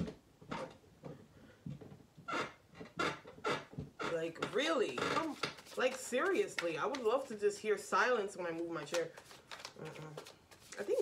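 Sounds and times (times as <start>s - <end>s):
chair creaking: 0.0s - 1.2s, 1.8s - 5.9s.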